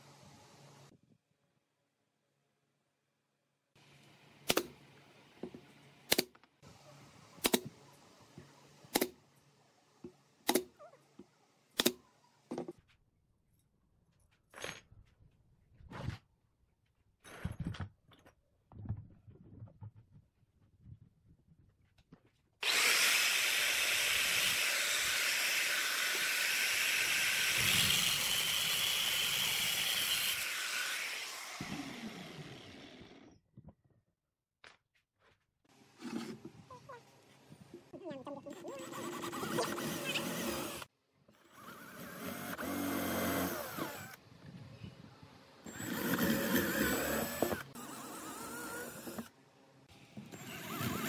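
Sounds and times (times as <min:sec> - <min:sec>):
nail gun firing into wood: 0:06.1 - 0:06.4, 0:07.4 - 0:07.7, 0:08.9 - 0:09.2, 0:10.4 - 0:10.7, 0:11.8 - 0:12.0
grinder cutting into metal: 0:22.6 - 0:33.3
angle grinder whining: 0:22.6 - 0:33.4, 0:50.3 - 0:51.0.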